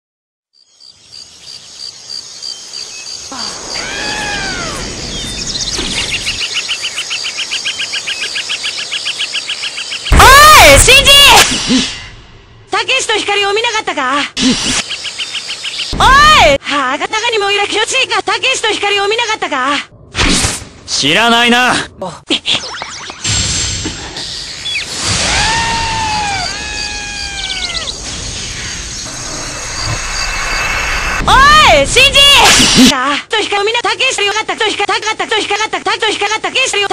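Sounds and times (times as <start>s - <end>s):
insects chirping: 0.5s - 11.0s, 14.8s - 16.3s, 24.2s - 31.3s
steady outdoor hiss: 0.6s - 16.5s
long high-pitched creature cry: 3.3s - 4.9s, 25.3s - 27.9s
bird-like call: 26.1s - 30.8s.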